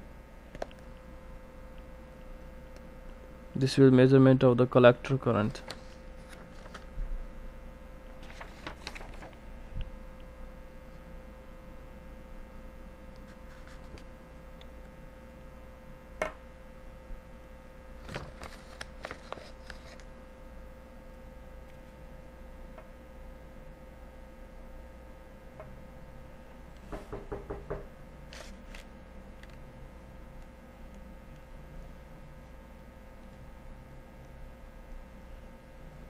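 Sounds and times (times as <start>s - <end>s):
electrical hum and hiss: 0.0s - 36.0s.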